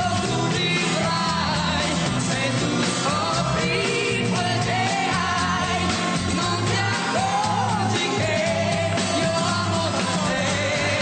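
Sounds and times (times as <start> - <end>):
pop song with singing: 0.0 - 11.0.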